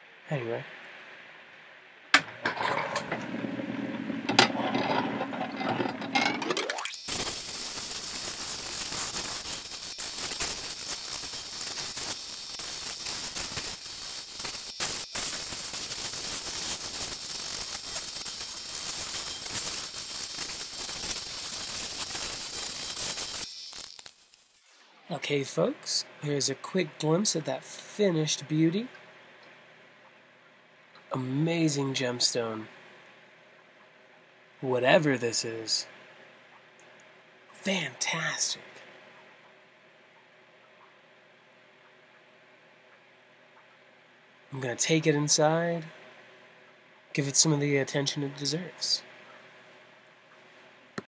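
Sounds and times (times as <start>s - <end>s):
stone grinding on wheel hiss: 6.9s - 24.6s.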